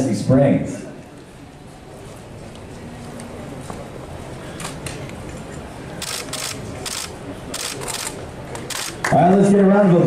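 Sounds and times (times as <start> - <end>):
murmur of room chatter: 0.0 - 10.0
camera shutters clicking: 4.6 - 5.0, 6.0 - 9.0.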